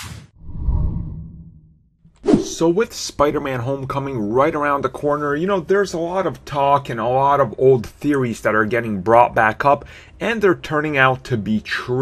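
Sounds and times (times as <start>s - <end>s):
brief whoosh: 2.2s - 2.6s.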